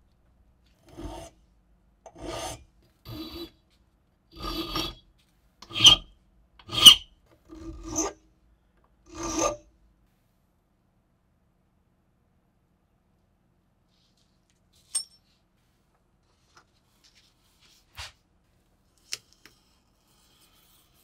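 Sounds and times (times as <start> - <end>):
file rasping on metal: 0.8 - 1.4, 2.1 - 3.6, 4.4 - 5.0, 5.6 - 8.2, 9.1 - 9.6.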